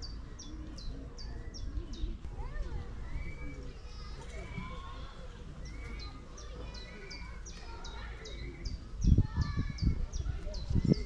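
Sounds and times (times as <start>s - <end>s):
birds singing: 0.0s - 11.0s.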